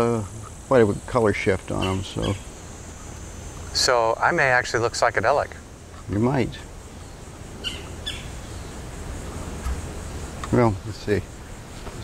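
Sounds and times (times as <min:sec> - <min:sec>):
bird chirping: 0:00.0 - 0:03.9, 0:04.6 - 0:11.8.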